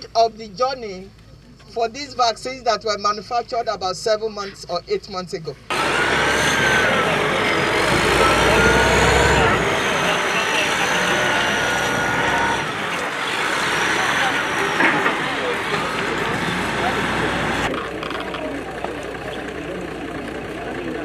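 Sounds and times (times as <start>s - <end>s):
crowd chatter: 5.7s - 21.0s
earthmoving machine running: 5.7s - 21.0s
high machine whines: 5.7s - 21.0s.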